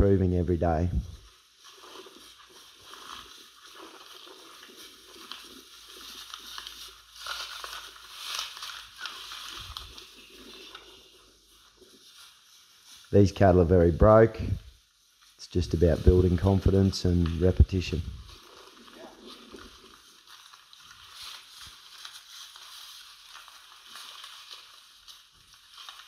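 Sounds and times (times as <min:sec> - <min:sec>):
cattle moving through dry grass: 0:00.6 - 0:26.0.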